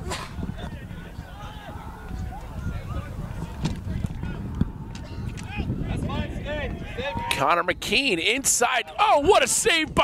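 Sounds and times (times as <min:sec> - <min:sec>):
players shouting: 0:00.6 - 0:07.5, 0:08.1 - 0:10.0.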